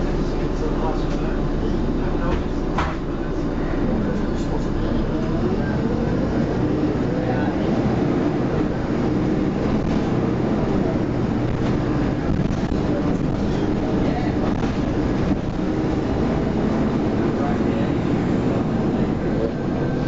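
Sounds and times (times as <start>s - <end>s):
bus diesel engine drone: 0.0s - 20.0s.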